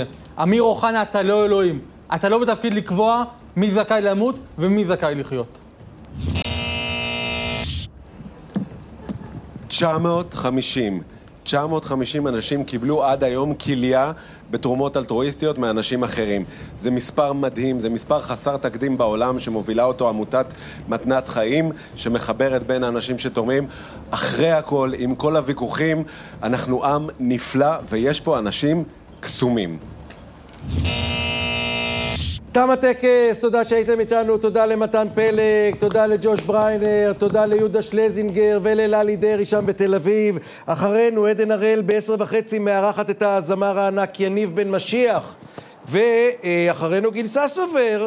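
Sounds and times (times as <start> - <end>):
held synthesized chord: 6.2 - 7.9, 30.6 - 32.4.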